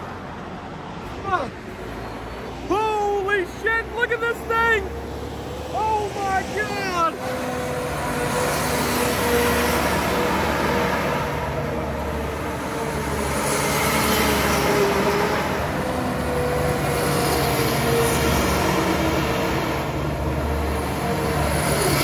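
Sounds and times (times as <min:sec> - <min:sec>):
diesel engine droning with whine: 0:00.0 - 0:22.0.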